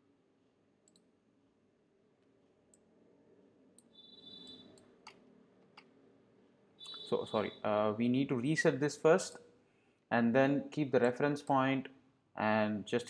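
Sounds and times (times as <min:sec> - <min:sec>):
faint computer mouse clicks: 0:00.8 - 0:01.1.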